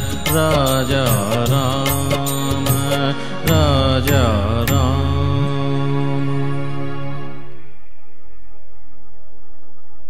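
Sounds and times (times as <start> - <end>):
sharp percussion strokes: 0.0 - 4.9
wordless singing: 0.0 - 7.6.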